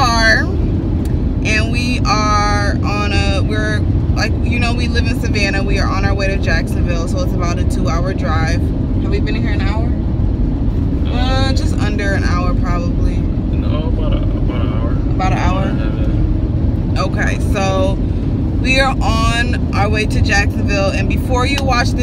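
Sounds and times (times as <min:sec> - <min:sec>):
woman talking: 0:00.0 - 0:00.6, 0:01.4 - 0:10.0, 0:11.1 - 0:13.3, 0:15.1 - 0:15.8, 0:17.0 - 0:18.0, 0:18.6 - 0:22.0
car road and engine noise: 0:00.0 - 0:22.0.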